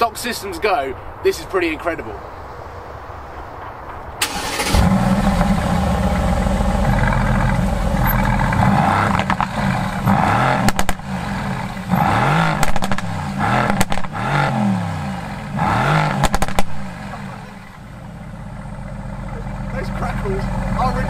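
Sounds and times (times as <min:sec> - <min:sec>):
exhaust pops: 0:04.2 - 0:14.5, 0:15.5 - 0:17.8
car engine starting and revving: 0:04.2 - 0:21.0.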